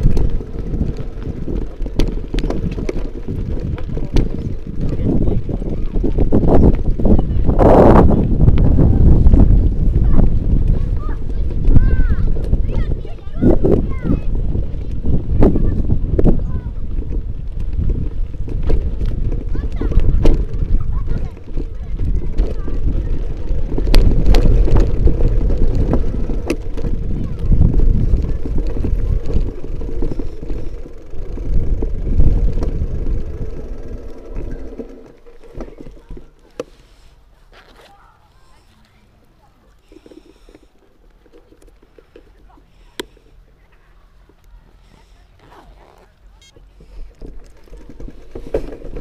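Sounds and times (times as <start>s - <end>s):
wind buffeting microphone: 0.0s - 36.4s
camera handling rumble: 17.5s - 36.9s.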